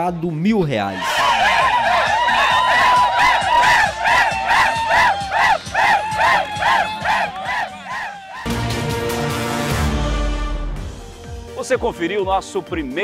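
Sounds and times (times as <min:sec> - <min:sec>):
men shouting and chanting: 0:01.0 - 0:08.5.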